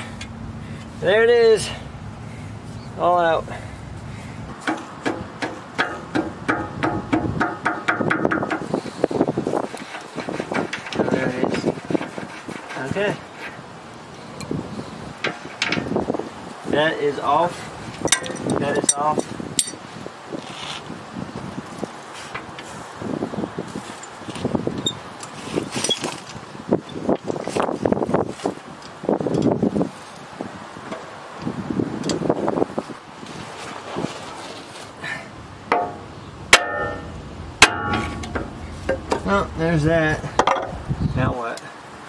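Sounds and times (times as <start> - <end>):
muffled tool handling: 8.5 - 13.6, 15.2 - 16.0, 17.9 - 19.9, 35.7 - 39.6
sharp metal clinks: 18.1 - 19.8.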